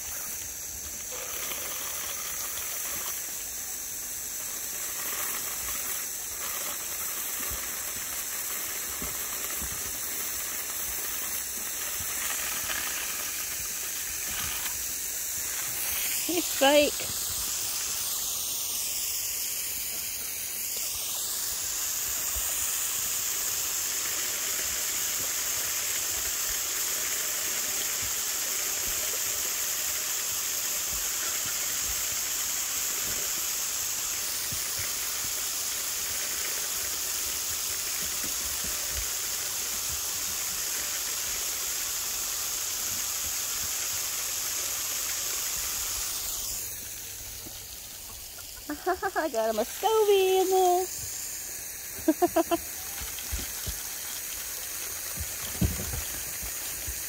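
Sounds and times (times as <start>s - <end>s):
hose spraying water onto grass: 0.0s - 57.0s.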